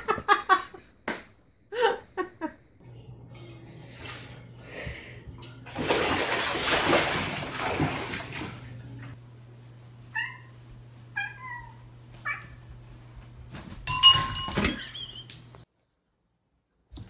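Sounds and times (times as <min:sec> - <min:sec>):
low steady hum: 0:00.8 - 0:15.6
water rushing in a bathtub: 0:05.6 - 0:09.2
cat meowing: 0:11.2 - 0:12.6.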